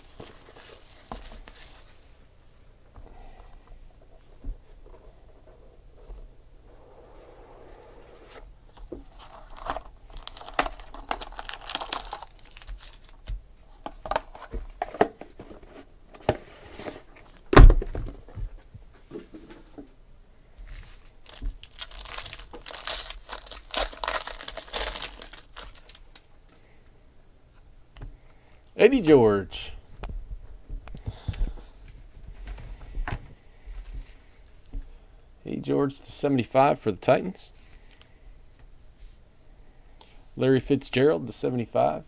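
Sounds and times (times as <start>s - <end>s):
foil wrapper crinkling and tearing: 9.3s - 13.3s, 20.9s - 26.3s.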